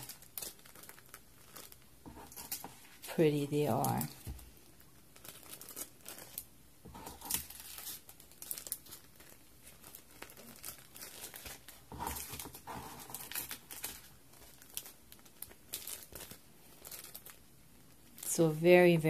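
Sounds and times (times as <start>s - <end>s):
cellophane bags crinkling: 0.0s - 19.0s.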